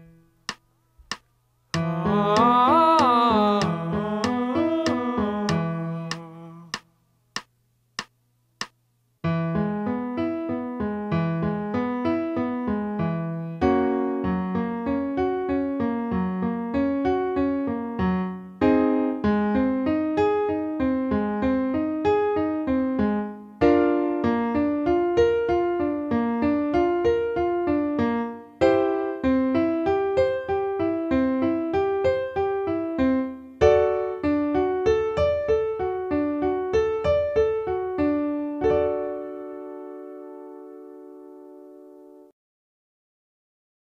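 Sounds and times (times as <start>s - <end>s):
electric piano arpeggios: 9.4s - 42.3s.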